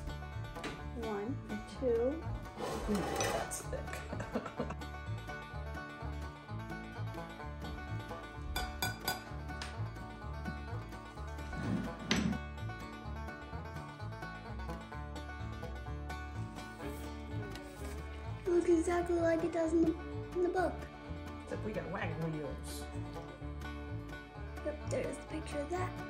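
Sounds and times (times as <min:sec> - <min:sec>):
background music with bass line: 0:00.0 - 0:26.0
spatula knocking in ceramic dish: 0:08.6 - 0:09.7.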